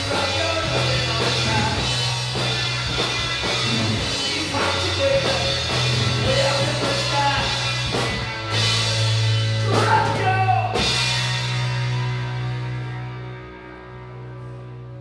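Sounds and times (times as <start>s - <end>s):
drum kit: 0.0s - 13.3s
bass guitar: 0.0s - 15.0s
electric guitars: 0.0s - 15.0s
person singing: 4.2s - 7.6s.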